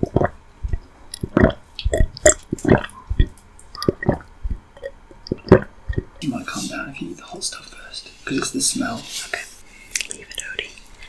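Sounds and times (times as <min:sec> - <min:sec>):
wet chewing sounds: 0:00.0 - 0:06.2, 0:09.9 - 0:11.0.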